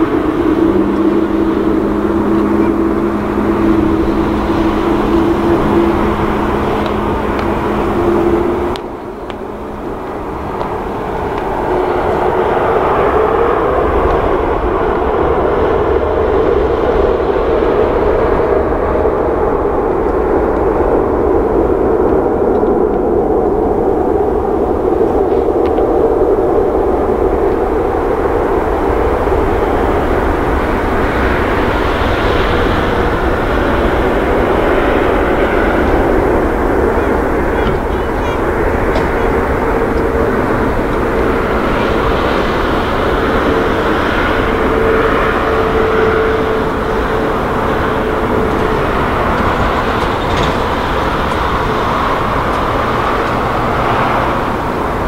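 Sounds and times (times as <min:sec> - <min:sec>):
jet engines spooling up: 0:00.0 - 0:55.0.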